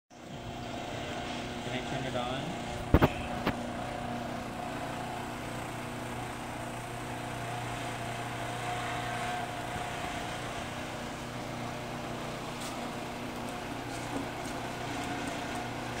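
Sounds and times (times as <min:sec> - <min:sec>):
conveyor motor hum: 0:00.2 - 0:16.0.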